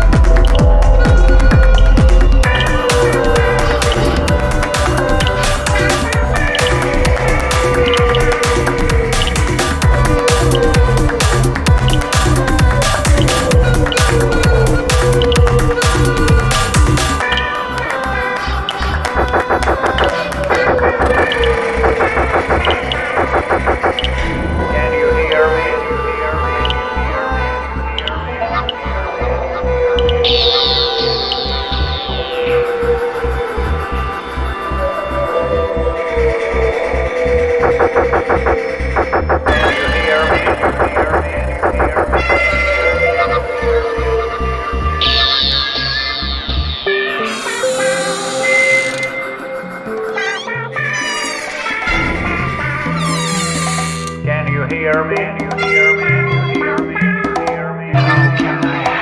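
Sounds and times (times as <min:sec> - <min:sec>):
buzzy stuttering synth: 0:00.0 - 0:17.2, 0:18.9 - 0:25.4, 0:30.2 - 0:35.1, 0:36.0 - 0:43.8, 0:44.8 - 0:54.1
kick drum beat: 0:00.0 - 0:17.2.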